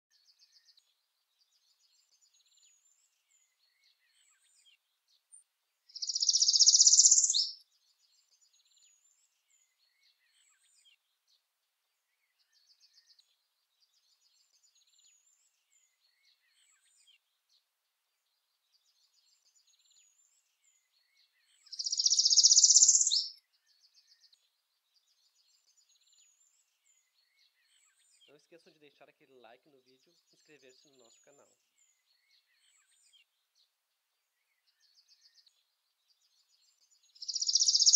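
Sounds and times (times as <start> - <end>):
faint high bird chirps: 0.1 - 11.0, 18.2 - 33.7, 34.4 - 37.9
bird singing buzzy trill: 5.9 - 7.6, 21.7 - 23.4, 37.1 - 37.9.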